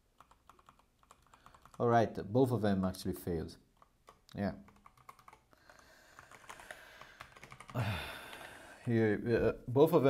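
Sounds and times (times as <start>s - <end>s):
keyboard keystrokes: 0.2s - 1.8s, 3.8s - 5.4s.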